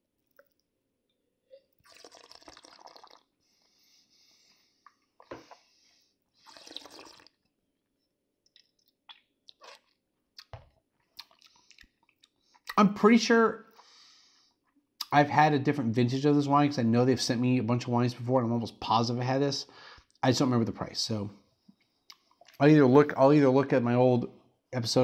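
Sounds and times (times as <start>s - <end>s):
wine slurping: 1.6s - 3.4s, 6.4s - 7.4s
liquid swishing in mouth: 1.8s - 3.2s, 6.4s - 7.4s.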